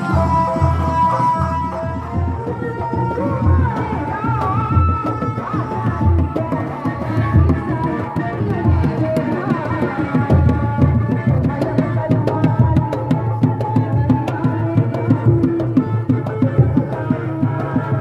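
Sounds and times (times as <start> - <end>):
hand drums playing: 0.0 - 18.0.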